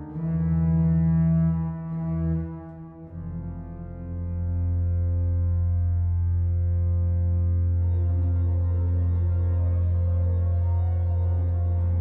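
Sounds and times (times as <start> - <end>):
deep organ pedal bass: 0.0 - 12.0
pipe organ chords: 0.0 - 12.0.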